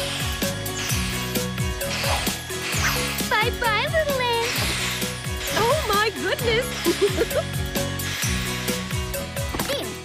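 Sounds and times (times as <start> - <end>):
toy vacuum whirring: 0.0 - 9.8
upbeat cartoon music: 0.0 - 10.0.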